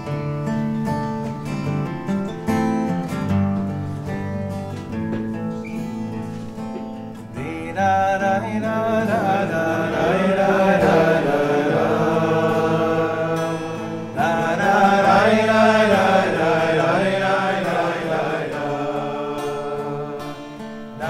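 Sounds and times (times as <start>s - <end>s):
acoustic guitar accompaniment: 0.0s - 21.0s
men singing in unison: 7.4s - 21.0s.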